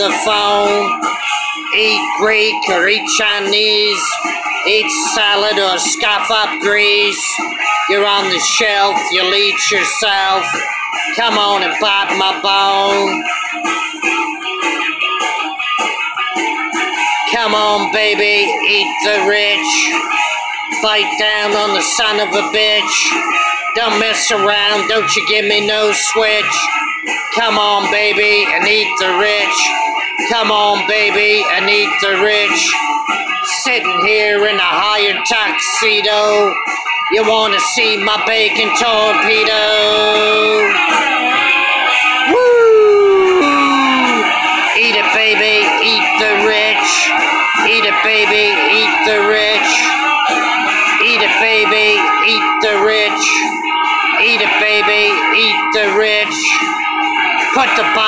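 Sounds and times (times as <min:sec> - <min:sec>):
hard rock music: 0:00.0 - 0:58.0
man howling: 0:42.2 - 0:44.4.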